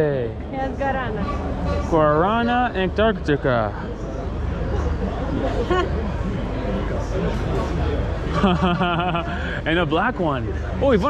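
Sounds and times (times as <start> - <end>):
indistinct background chatter: 0.0 - 11.0.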